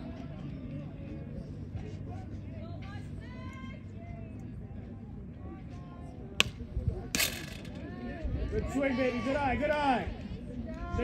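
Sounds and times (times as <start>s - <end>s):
sharp crack of softball pitch: 6.4s - 8.1s.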